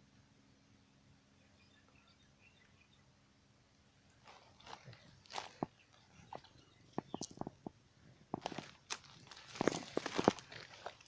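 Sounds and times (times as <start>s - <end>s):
rustling through reeds and water: 4.0s - 11.0s.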